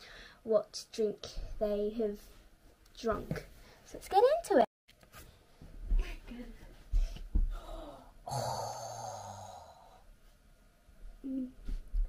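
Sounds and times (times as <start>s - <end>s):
barefoot thumps on carpet: 6.9s - 7.6s
long breathy sigh: 7.5s - 10.0s.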